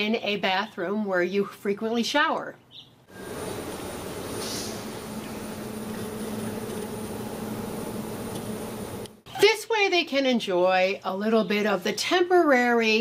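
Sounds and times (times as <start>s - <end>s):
low hum: 3.1s - 9.2s
steady hiss: 3.1s - 9.2s.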